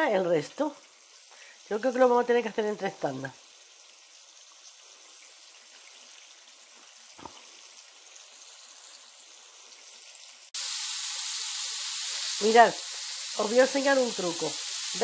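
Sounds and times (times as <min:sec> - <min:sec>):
chicken frying in hot oil: 0:00.0 - 0:15.0.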